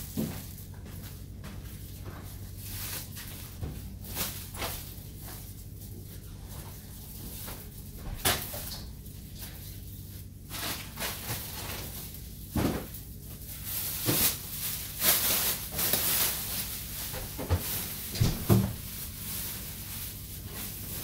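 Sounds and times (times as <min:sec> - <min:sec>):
plastic bag crinkling: 0:01.8 - 0:21.0.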